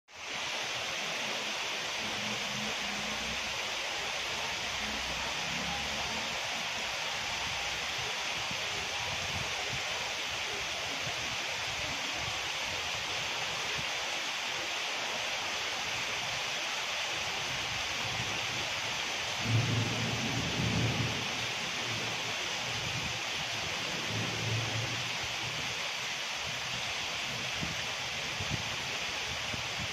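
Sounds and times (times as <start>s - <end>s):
heavy rain falling: 0.1s - 29.9s.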